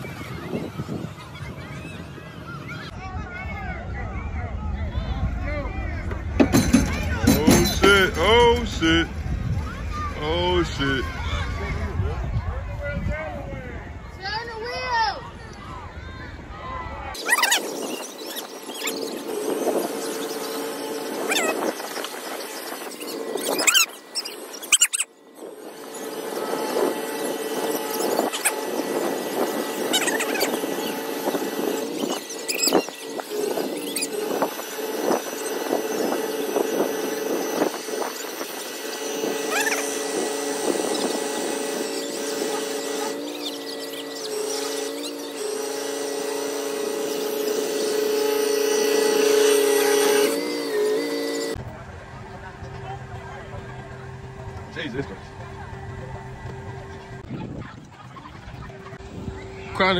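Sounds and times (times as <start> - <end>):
winch and engine whining under load: 6.1 - 11.2, 17.2 - 59.9.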